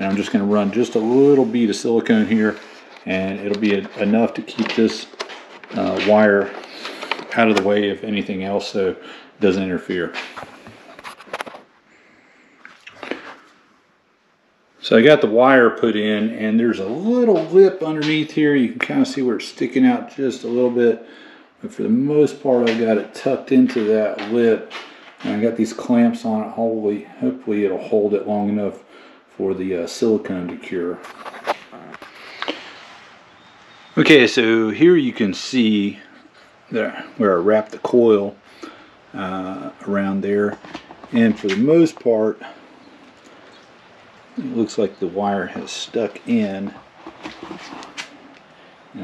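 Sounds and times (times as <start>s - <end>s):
faint room hiss: 0.0s - 49.0s.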